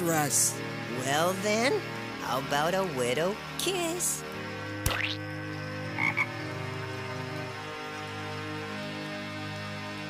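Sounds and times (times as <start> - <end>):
cartoon frog croaking: 4.8 - 5.2, 6.0 - 6.4.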